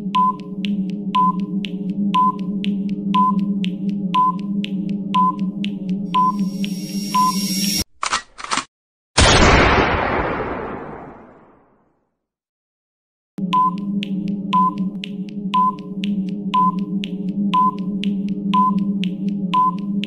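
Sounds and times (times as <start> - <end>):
timer ticking: 0.0 - 7.4, 13.4 - 20.0
low electronic drone: 0.0 - 7.8
loud sudden hit: 9.2 - 11.7.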